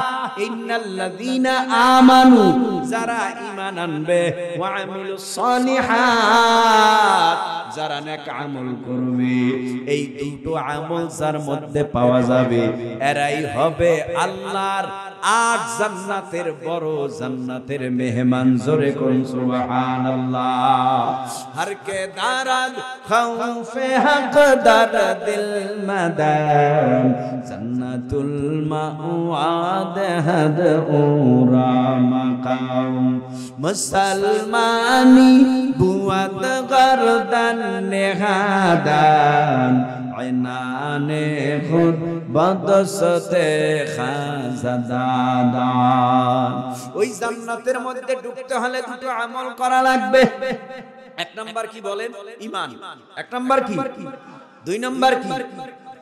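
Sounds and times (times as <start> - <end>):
man chanting over loudspeaker: 0.0 - 56.0.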